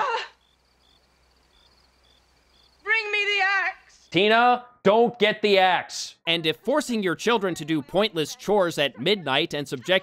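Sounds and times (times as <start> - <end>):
woman shouting: 0.0 - 0.3, 2.9 - 4.0
crickets chirping: 0.3 - 4.1.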